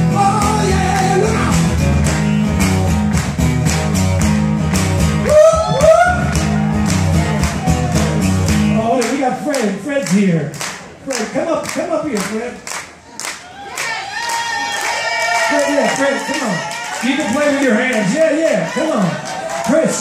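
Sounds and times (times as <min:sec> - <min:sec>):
person singing: 0:00.0 - 0:01.8
acoustic blues guitar: 0:00.0 - 0:09.4
audience clapping in time: 0:01.6 - 0:20.0.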